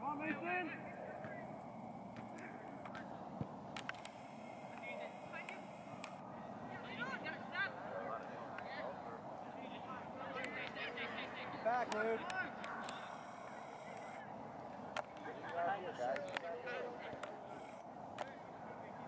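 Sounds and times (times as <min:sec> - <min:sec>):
outdoor background noise: 0:00.0 - 0:19.0.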